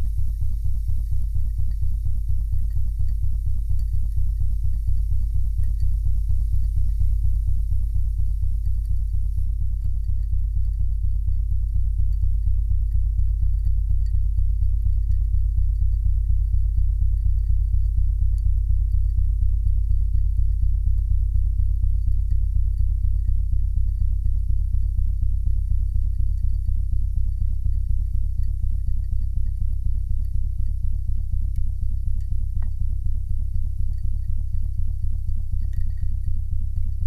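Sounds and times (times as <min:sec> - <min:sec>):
low rumbling drone: 0:00.0 - 0:37.0.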